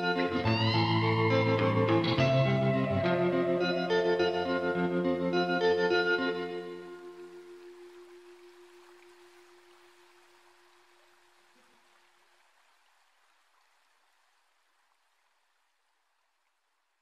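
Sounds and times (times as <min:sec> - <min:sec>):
held organ chord: 0:00.0 - 0:07.7
faint hiss: 0:00.0 - 0:17.0.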